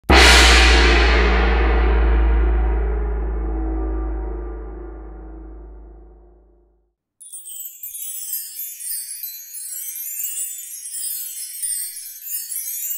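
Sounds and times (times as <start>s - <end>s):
deep gong strike ringing: 0.1s - 6.7s
sleigh bells shaking: 7.2s - 12.9s.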